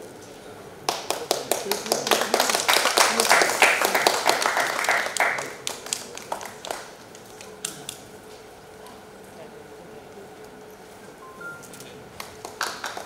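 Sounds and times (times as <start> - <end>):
audience applauding: 0.9 - 7.6, 12.2 - 13.0.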